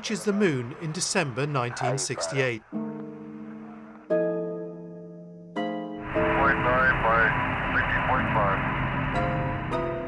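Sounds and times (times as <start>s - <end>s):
radio static hiss: 6.1s - 9.2s
garbled radio voice: 6.3s - 8.6s.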